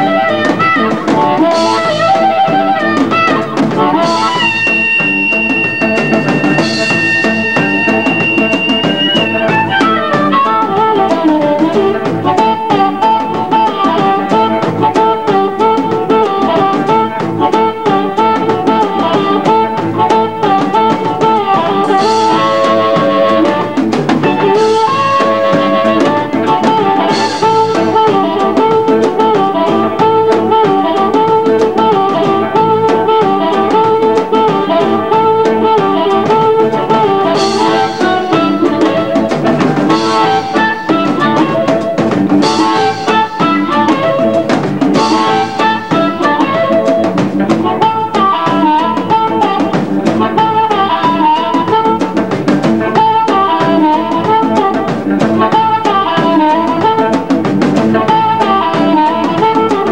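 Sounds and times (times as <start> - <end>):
amplified harmonica: 0.0 - 59.9
drum kit steady beat: 0.0 - 59.9
electric guitar: 0.0 - 59.9.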